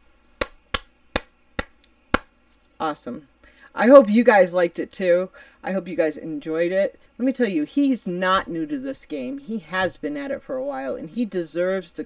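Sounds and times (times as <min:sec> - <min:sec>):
person clapping slowly: 0:00.4 - 0:02.3.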